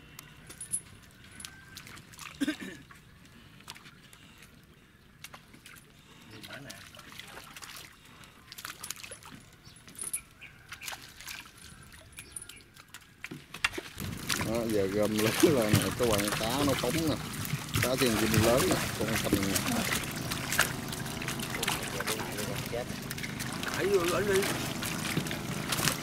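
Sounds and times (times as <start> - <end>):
water splashing and trickling: 0.5 - 26.0
fish flipping in net: 12.9 - 26.0.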